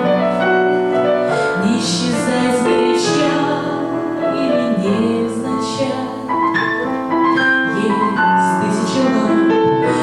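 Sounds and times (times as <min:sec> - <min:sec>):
digital piano: 0:00.0 - 0:10.0
young woman singing: 0:01.4 - 0:10.0.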